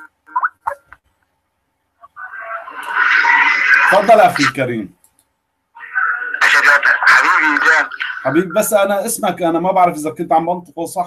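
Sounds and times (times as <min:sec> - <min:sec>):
person speaking over a phone line: 0:05.8 - 0:08.7.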